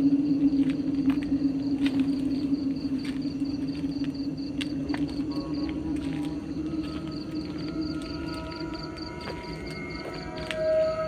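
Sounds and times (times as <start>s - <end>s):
cricket chirping: 0.0s - 11.0s
eerie ambient drone music: 0.0s - 11.0s.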